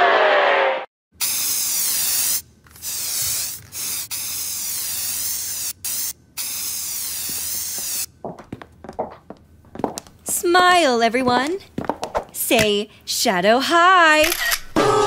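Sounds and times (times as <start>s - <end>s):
spray paint can hissing: 1.2s - 8.1s.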